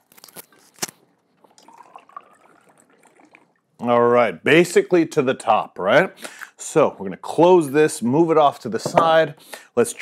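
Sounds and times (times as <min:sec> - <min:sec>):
liquid pouring into glass jar: 0:01.4 - 0:04.1.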